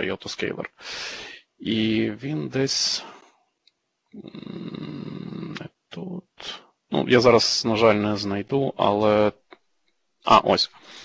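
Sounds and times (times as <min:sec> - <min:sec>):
man humming in hesitation: 0:04.2 - 0:05.7.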